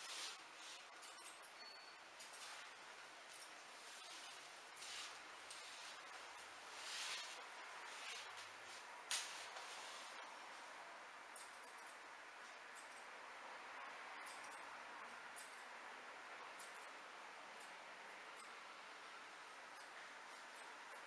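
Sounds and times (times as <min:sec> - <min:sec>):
steady low hiss: 0:00.0 - 0:21.0
scissors snipping hair: 0:11.3 - 0:13.1, 0:14.2 - 0:15.7, 0:16.5 - 0:18.6, 0:19.7 - 0:21.0.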